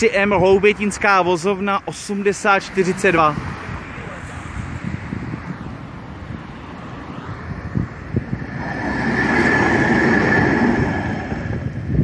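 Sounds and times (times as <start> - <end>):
high steady whine: 6.7 - 12.0
tram approaching on track: 8.4 - 12.0.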